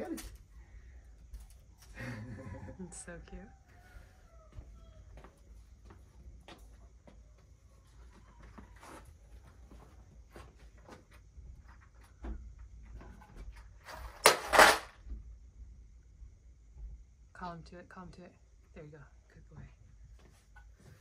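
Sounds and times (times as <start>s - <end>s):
object clattering on concrete floor: 13.0s - 15.0s.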